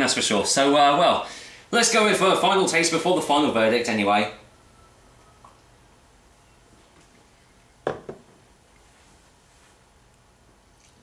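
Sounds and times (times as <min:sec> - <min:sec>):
glass set down on table: 0:07.8 - 0:08.4.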